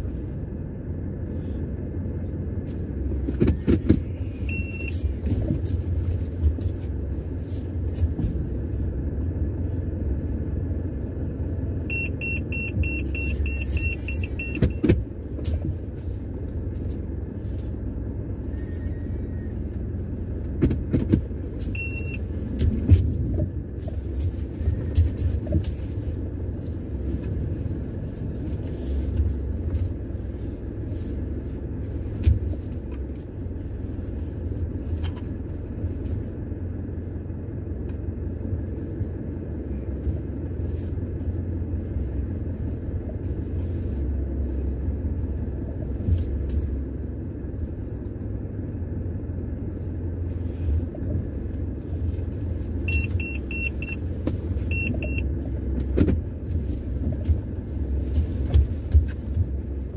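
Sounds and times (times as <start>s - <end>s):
car interior low rumble: 0.0s - 59.9s
electronic car beeper: 4.2s - 5.0s, 11.9s - 14.9s, 21.7s - 22.3s, 52.9s - 54.0s, 54.7s - 55.3s.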